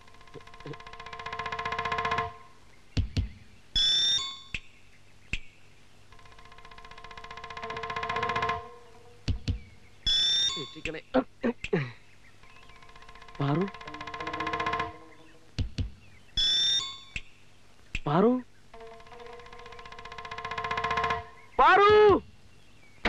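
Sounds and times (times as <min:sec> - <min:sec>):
rapidly pulsing many-toned note: 0:06.2 - 0:10.8, 0:12.6 - 0:15.5, 0:18.8 - 0:21.6
short thumps: 0:07.2 - 0:09.8, 0:13.3 - 0:16.0
high falling squeal: 0:10.1 - 0:10.8, 0:16.4 - 0:17.1, 0:18.8 - 0:21.6.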